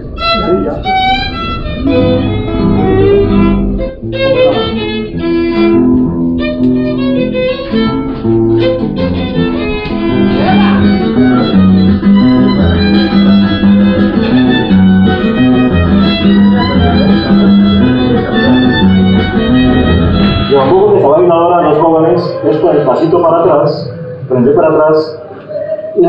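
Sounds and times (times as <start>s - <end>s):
violin melody: 0.0s - 23.5s
classical guitar playing: 0.0s - 24.3s
man talking: 20.5s - 26.0s.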